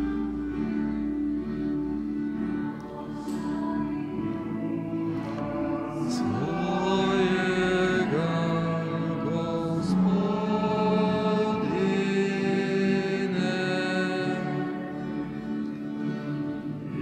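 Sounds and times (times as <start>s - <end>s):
voices chanting a hymn: 2.1s - 17.0s.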